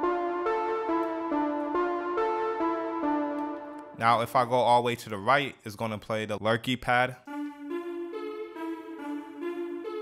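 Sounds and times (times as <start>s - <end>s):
synth keys chords: 0.0s - 4.5s, 7.2s - 10.0s.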